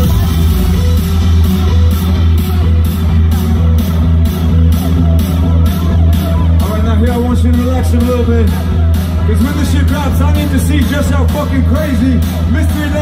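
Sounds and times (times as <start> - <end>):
loud electronic dance music: 0.0 - 13.0.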